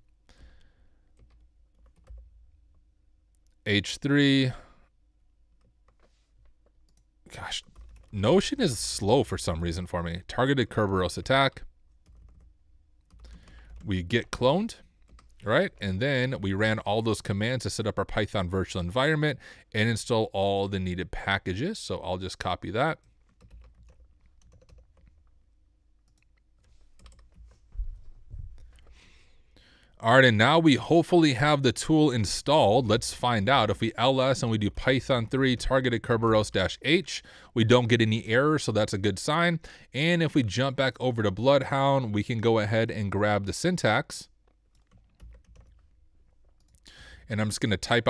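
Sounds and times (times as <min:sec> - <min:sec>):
keyboard and mouse clicks: 0:26.0 - 0:27.6.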